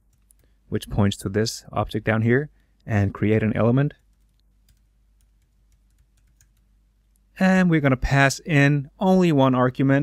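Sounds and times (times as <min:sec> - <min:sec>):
faint keyboard keystrokes: 0:04.0 - 0:06.7.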